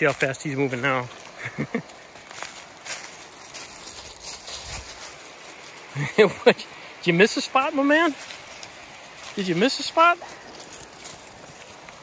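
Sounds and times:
footsteps crunching through dry leaves: 0.0s - 12.0s.

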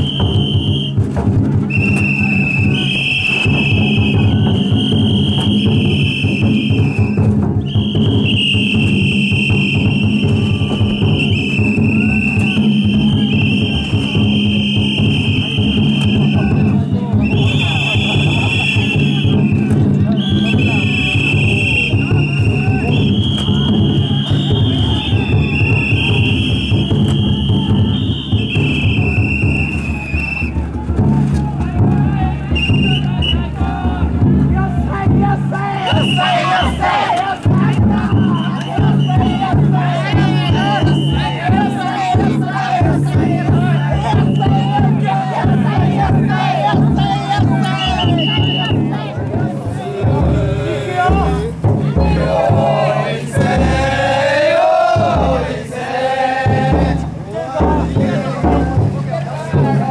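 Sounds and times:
long high whistle: 0.0s - 1.0s, 1.7s - 30.6s, 47.7s - 48.8s
taiko drum beating: 0.0s - 59.9s
people shouting a chant: 1.8s - 7.2s, 7.8s - 59.9s.

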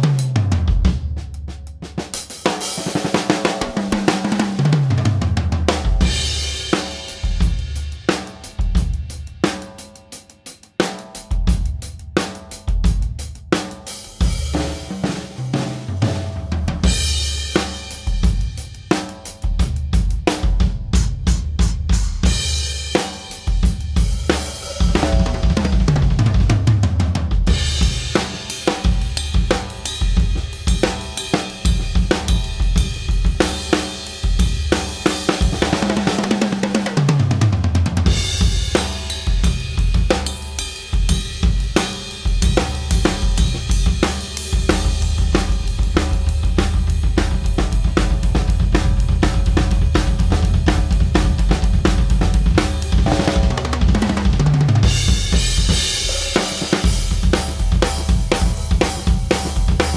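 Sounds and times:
drum kit groove: 0.0s - 59.9s
rapid low drum hits: 2.8s - 9.5s, 14.2s - 59.9s.

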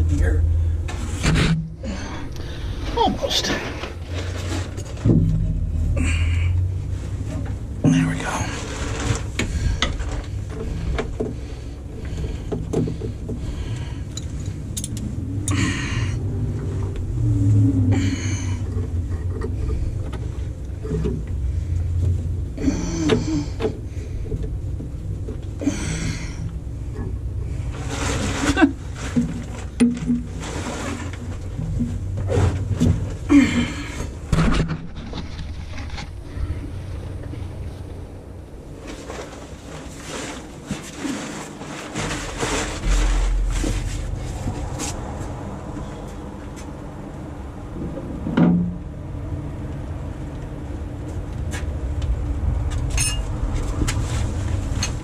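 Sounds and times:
steady low rumble: 0.0s - 55.0s
hands scraping and rustling: 27.5s - 33.3s, 38.8s - 45.4s
wrench clinking on metal: 53.0s - 53.3s.

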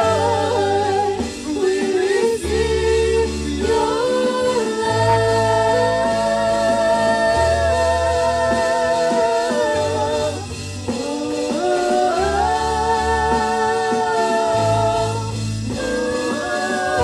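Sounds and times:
low bass notes: 0.0s - 17.0s
worship band singing: 0.0s - 17.0s.

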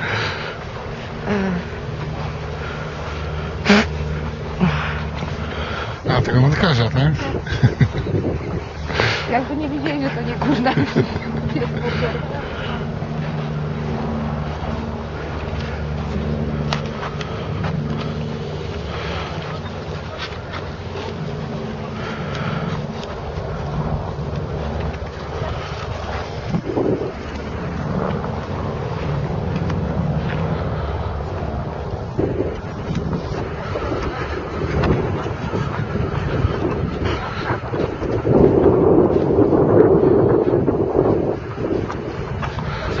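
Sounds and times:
low motor drone: 0.0s - 43.0s
wind buffeting microphone: 0.0s - 43.0s.

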